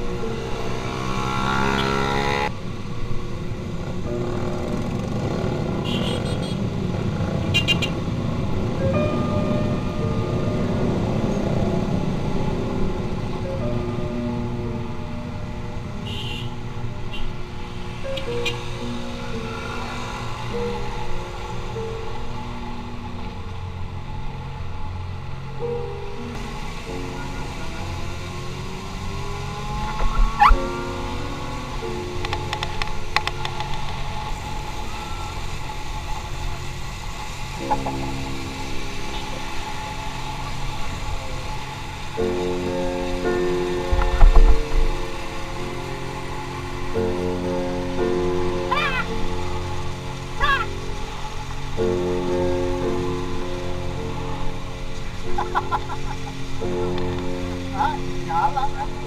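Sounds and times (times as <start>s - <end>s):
background music with held notes: 0.0s - 59.0s.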